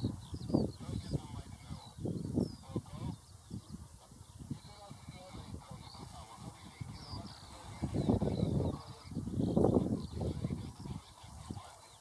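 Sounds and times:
geese honking: 0:03.9 - 0:09.2.

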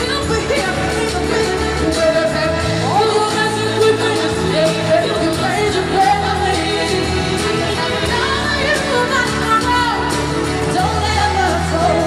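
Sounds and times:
live band playing: 0:00.0 - 0:12.0
woman singing vocal runs: 0:00.0 - 0:12.0.

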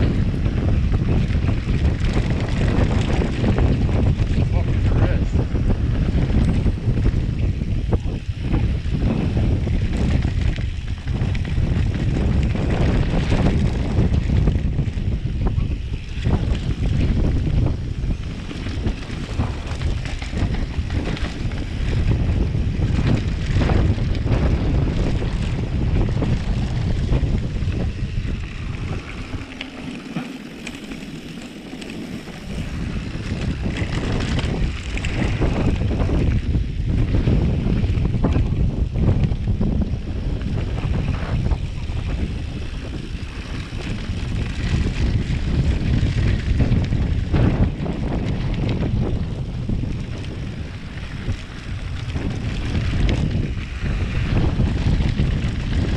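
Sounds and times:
bike knocks and rattles: 0:00.0 - 0:55.9
tyres rumbling on dirt: 0:00.0 - 0:55.9
wind buffeting microphone: 0:00.0 - 0:55.9.

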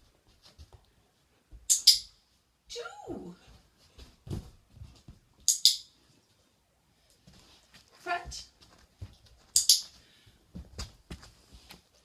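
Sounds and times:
dog footsteps on carpet: 0:00.0 - 0:01.7, 0:03.4 - 0:05.5, 0:07.2 - 0:12.0.

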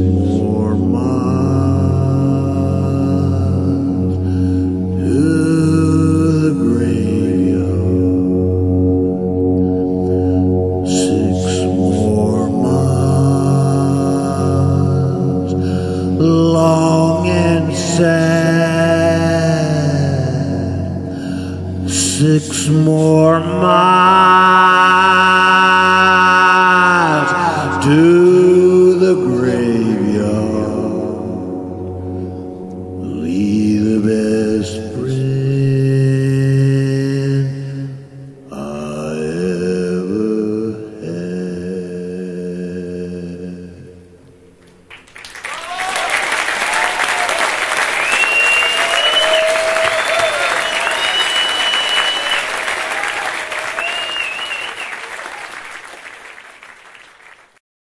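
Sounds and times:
live song chords and voices: 0:00.0 - 0:44.3
audience applauding and cheering: 0:44.9 - 0:57.6
whistles from audience: 0:45.4 - 0:57.3.

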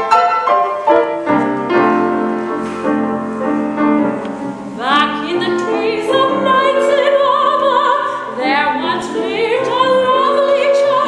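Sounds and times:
grand piano chords: 0:00.0 - 0:11.0
soprano singing with vibrato: 0:04.8 - 0:11.0.

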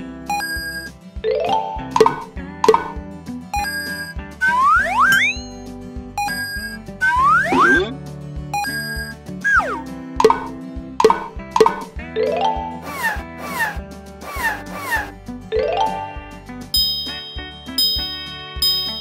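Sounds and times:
cheerful children's music: 0:00.0 - 0:19.0
cartoon plops: 0:02.0 - 0:03.0, 0:07.0 - 0:07.9, 0:09.5 - 0:11.9
slide-whistle glides: 0:03.6 - 0:05.5, 0:06.2 - 0:07.9, 0:08.6 - 0:09.8.

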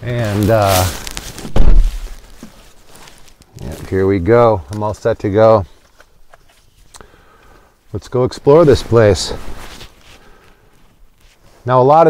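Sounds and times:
faint rustling: 0:00.0 - 0:12.0.

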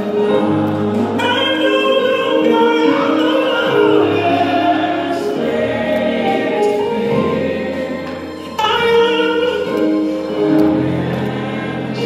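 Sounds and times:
held keyboard chords: 0:00.0 - 0:12.0
voices singing: 0:00.0 - 0:12.0.

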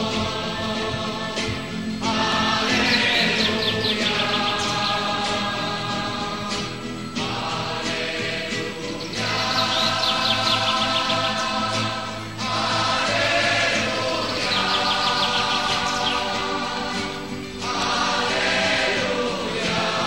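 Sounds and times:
choir singing sustained chords: 0:00.0 - 0:20.0
songbird chirping: 0:00.0 - 0:20.0.

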